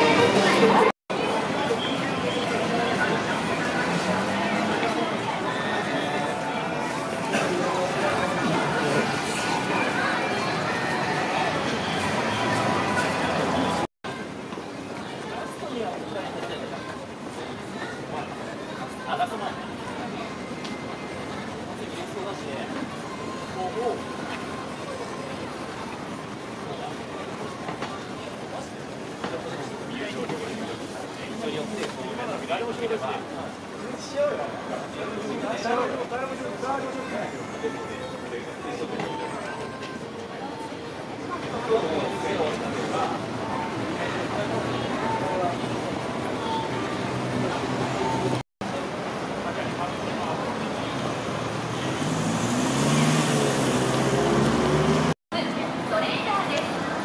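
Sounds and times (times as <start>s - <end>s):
faint voices: 0.0s - 57.0s
traffic noise: 0.0s - 57.0s
urban background rumble: 0.0s - 57.0s
vehicle engine pulling away: 50.9s - 55.2s.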